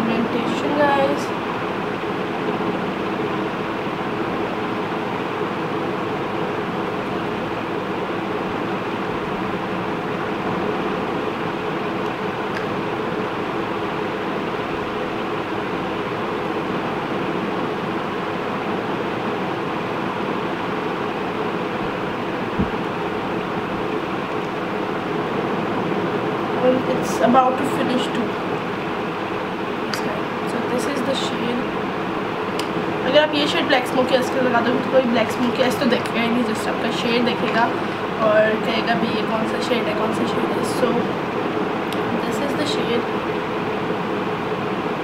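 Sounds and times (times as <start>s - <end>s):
mechanical hum and hiss: 0.0s - 45.0s.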